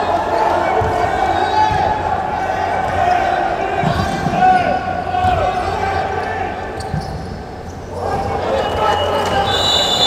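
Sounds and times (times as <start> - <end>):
sneakers squeaking on floor: 6.8 - 10.0.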